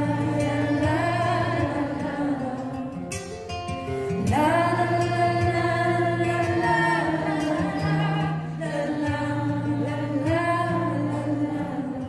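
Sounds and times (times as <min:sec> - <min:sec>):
audience singing along: 0:00.0 - 0:03.1, 0:04.3 - 0:12.0
woman singing a slow ballad: 0:00.0 - 0:03.2, 0:04.1 - 0:12.0
acoustic guitar: 0:00.0 - 0:12.0.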